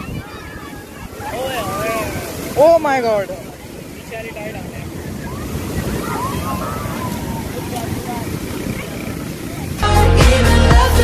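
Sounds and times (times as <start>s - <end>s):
wind on microphone: 0.0s - 9.8s
sea surf washing on sand: 0.0s - 9.9s.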